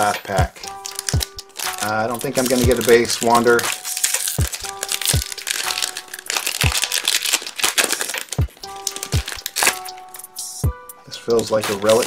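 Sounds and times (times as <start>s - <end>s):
foil wrapper crinkling and tearing: 0.0s - 10.0s, 11.6s - 12.0s
background music with drum hits: 0.0s - 12.0s.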